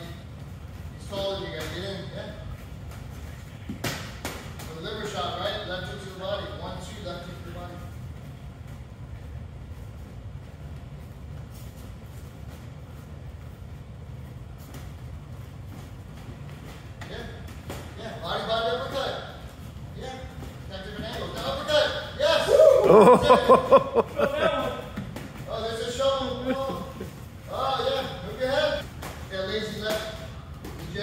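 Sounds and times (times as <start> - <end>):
low room rumble: 0.0 - 31.0.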